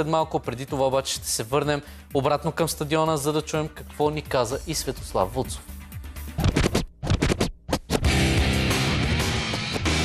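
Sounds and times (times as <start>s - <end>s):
stuttering electronic music: 6.1s - 8.4s
record scratch effects: 6.3s - 8.1s.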